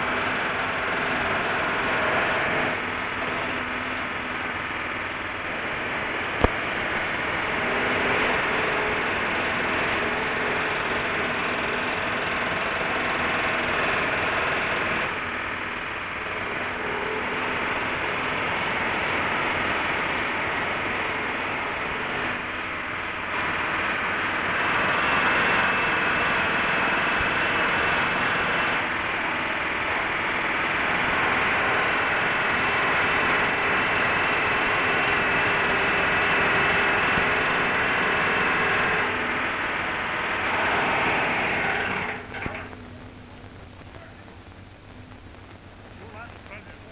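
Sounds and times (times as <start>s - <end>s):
film recording hiss and hum: 0.0s - 46.9s.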